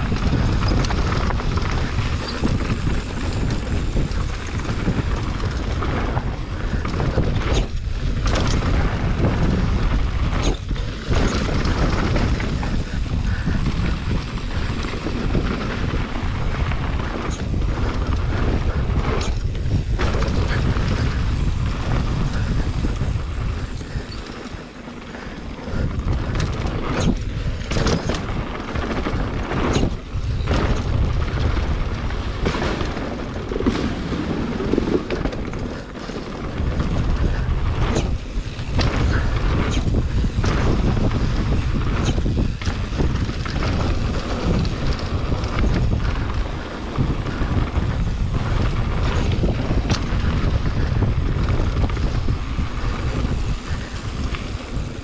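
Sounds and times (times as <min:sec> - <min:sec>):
bike knocks and rattles: 0:00.0 - 0:55.0
tyres rolling on dirt: 0:00.0 - 0:55.0
wind buffeting microphone: 0:00.0 - 0:55.0.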